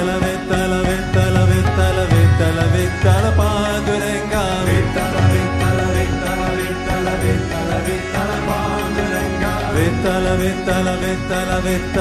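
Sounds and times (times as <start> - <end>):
chanted melody: 0.0 - 12.0
steady held drone: 0.0 - 12.0.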